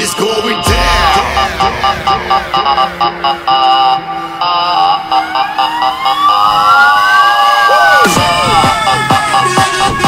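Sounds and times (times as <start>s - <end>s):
electronic dance music: 0.6s - 7.1s
falling synth sweeps: 0.7s - 7.2s
fire engine siren wailing: 2.7s - 10.0s.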